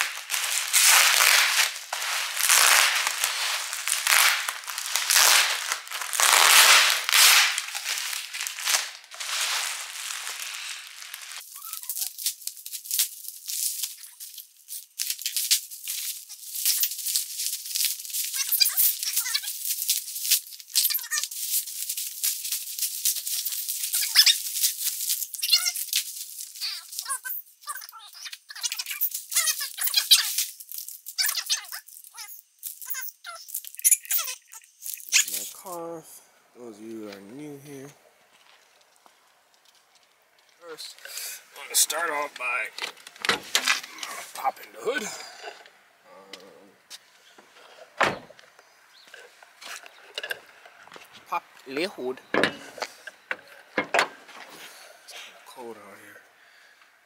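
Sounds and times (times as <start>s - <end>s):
bubble wrap crinkling: 0.0s - 35.8s, 37.3s - 45.9s.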